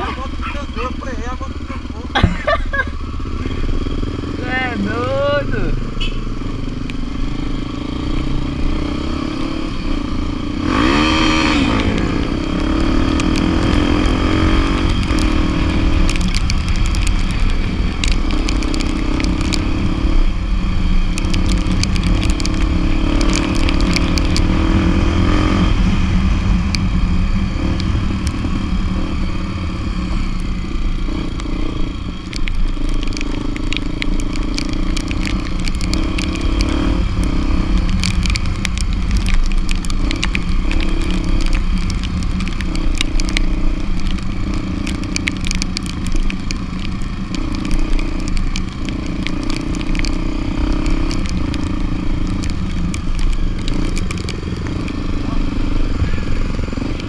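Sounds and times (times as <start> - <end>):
motorcycle engine running: 0.0 - 57.0
rattles from rough road: 0.0 - 57.0.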